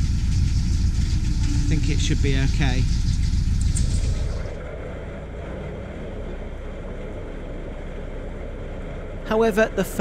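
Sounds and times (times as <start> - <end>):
boat engine running low: 0.0 - 10.0.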